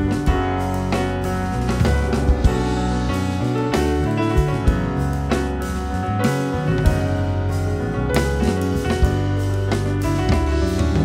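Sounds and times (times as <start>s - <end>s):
bass line: 0.0s - 11.0s
sustained keyboard chords: 0.0s - 11.0s.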